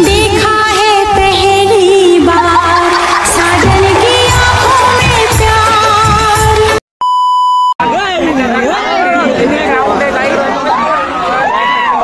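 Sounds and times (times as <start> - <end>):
test-tone beep: 7.0 - 7.8
crowd of voices chattering: 7.8 - 12.0.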